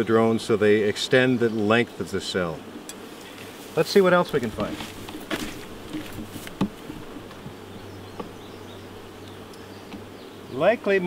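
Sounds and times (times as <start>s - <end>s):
bees buzzing: 0.0s - 11.0s
light knocks on wooden frames: 4.4s - 8.4s.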